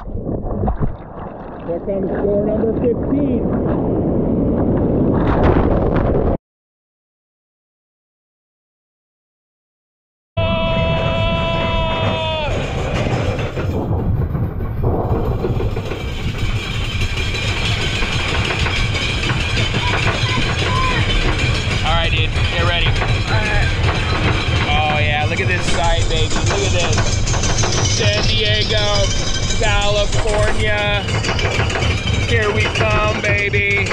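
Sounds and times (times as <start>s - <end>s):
roller coaster rumbling on track: 1.7s - 6.4s, 10.4s - 33.9s
held tone: 16.7s - 33.9s
riders' voices: 21.8s - 23.8s, 24.6s - 27.0s, 32.3s - 33.9s.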